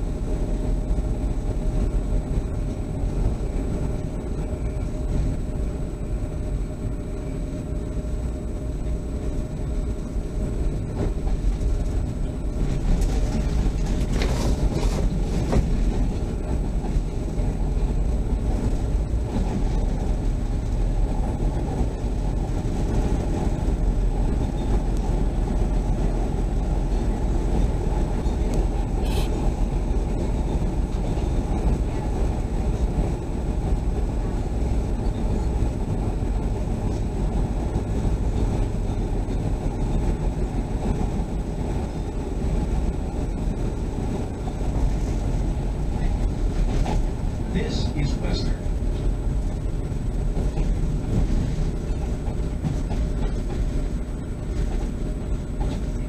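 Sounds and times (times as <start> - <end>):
train wheels rumbling: 0.0 - 56.0.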